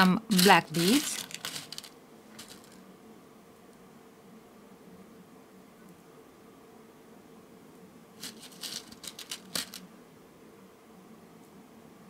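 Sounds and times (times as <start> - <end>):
wooden beads clicking on plastic tray: 0.3 - 2.8, 8.2 - 9.8.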